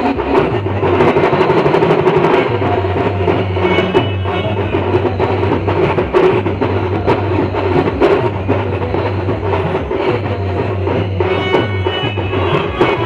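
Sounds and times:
steady drum beat: 0.0 - 13.0.

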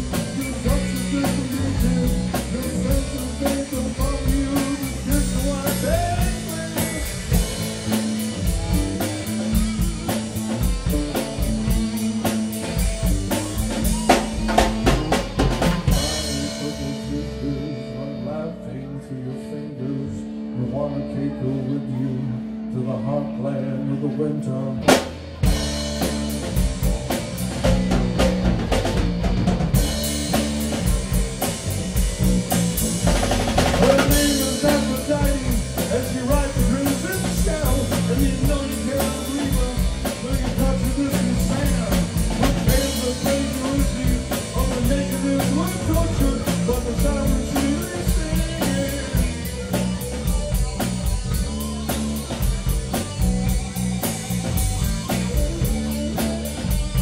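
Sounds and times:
rock band playing: 0.0 - 57.0.

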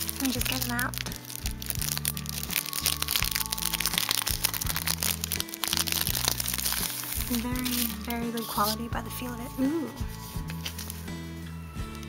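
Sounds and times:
plastic sleeve crinkling: 0.0 - 11.1
background music with low notes: 0.0 - 12.0.

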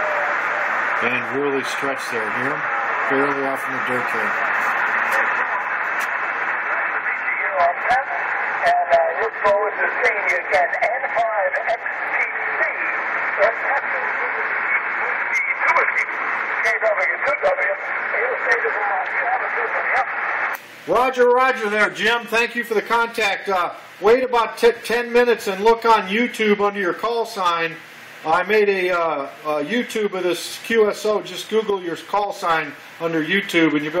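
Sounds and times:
radio hiss and crackling static: 0.0 - 34.0
weak voice over radio: 6.6 - 20.2.

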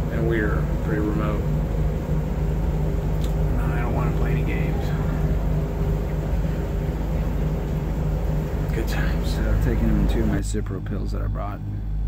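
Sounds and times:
machine humming: 0.0 - 12.0
faint voices: 3.4 - 11.4.

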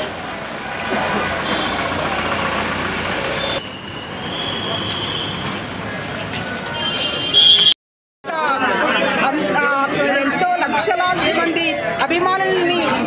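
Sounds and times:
crowd voices: 0.0 - 7.4, 8.3 - 13.0
van engine running: 0.1 - 3.6.

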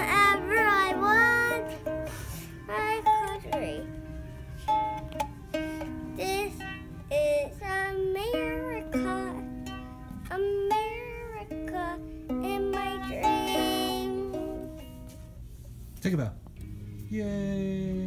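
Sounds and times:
child singing: 0.0 - 1.9, 2.7 - 3.9, 6.2 - 14.8
ukulele strumming: 0.0 - 15.7.

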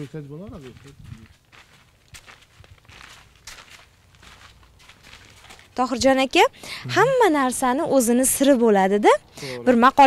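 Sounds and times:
footsteps on wooden planks: 0.0 - 5.8.

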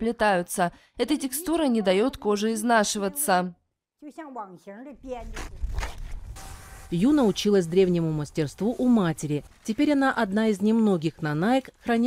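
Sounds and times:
woman's voice: 0.0 - 5.4, 6.9 - 12.0.

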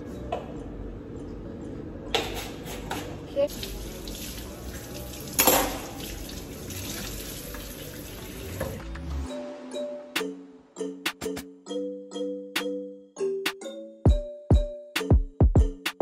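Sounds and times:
faucet running into steel sink: 3.5 - 8.8.

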